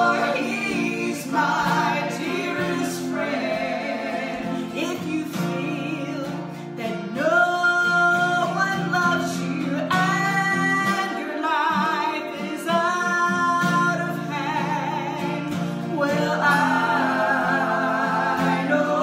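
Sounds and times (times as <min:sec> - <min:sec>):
men singing along: 0:00.0 - 0:06.1, 0:13.7 - 0:19.0
strummed acoustic guitar: 0:00.0 - 0:19.0
woman singing: 0:00.0 - 0:19.0.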